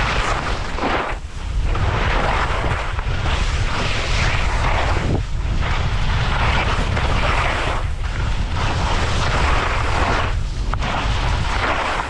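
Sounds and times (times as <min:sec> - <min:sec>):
skis scraping through snow: 0:00.0 - 0:12.0
wind buffeting microphone: 0:00.0 - 0:12.0.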